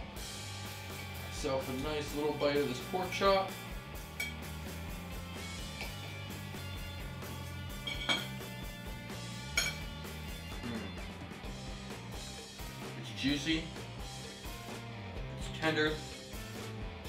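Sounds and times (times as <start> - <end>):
guitar music with bass line: 0.0 - 17.0
cutlery clinking on plate: 4.2 - 4.4, 7.8 - 8.4, 9.6 - 9.9.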